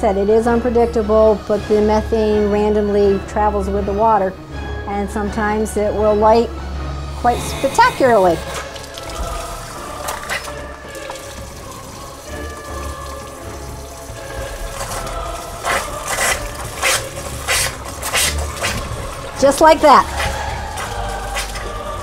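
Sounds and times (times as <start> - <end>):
gas flaring bursts: 7.2 - 9.0
faucet running into a metal sink: 7.4 - 21.8.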